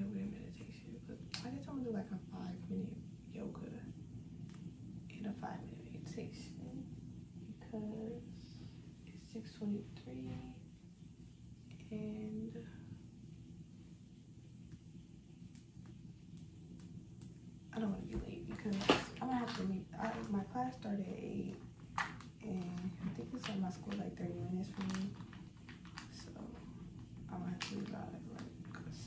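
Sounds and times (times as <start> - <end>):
woman talking: 0.0 - 4.0, 5.1 - 10.7, 11.7 - 13.0, 17.7 - 21.7, 22.4 - 29.0.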